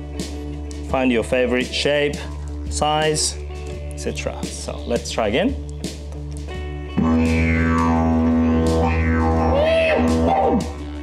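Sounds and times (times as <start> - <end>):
didgeridoo low drone: 7.0 - 11.0.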